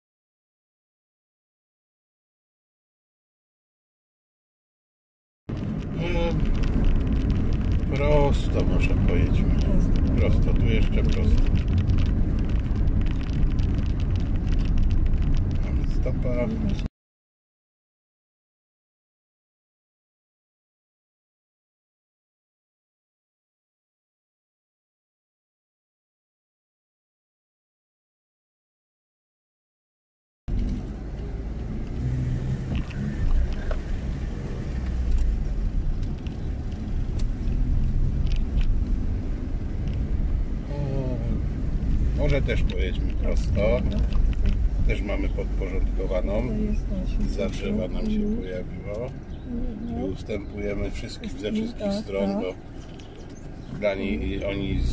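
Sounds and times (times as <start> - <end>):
car engine and tyre rumble: 5.5 - 16.9, 30.5 - 54.9.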